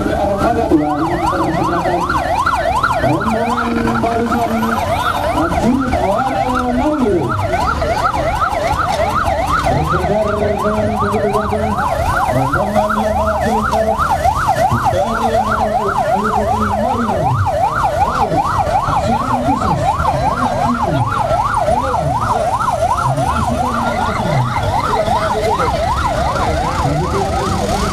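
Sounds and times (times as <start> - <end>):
siren yelping: 0.0 - 27.9
vehicle engines running: 0.0 - 27.9.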